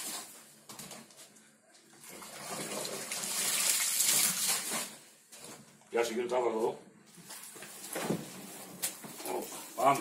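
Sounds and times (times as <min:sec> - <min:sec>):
faint handling and shuffling: 0:04.7 - 0:10.0.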